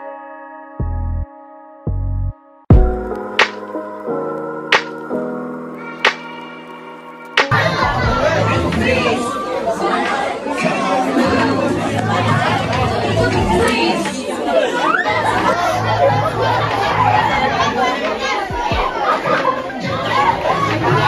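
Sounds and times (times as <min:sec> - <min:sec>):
children chattering and calling out: 0:03.2 - 0:21.0.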